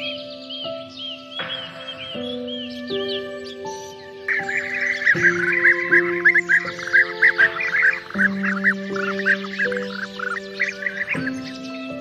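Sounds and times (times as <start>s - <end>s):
small birds chirping: 0.0s - 12.0s
soft music chords: 0.0s - 12.0s.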